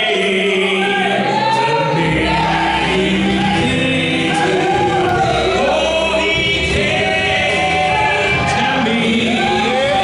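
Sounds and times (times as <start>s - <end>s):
men singing in close harmony: 0.0s - 10.0s
instrumental accompaniment: 1.9s - 10.0s.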